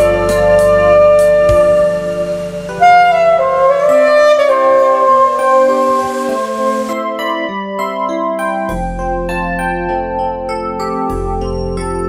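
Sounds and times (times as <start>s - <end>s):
alto saxophone ballad melody: 0.0s - 7.5s
instrumental backing track: 0.0s - 12.0s.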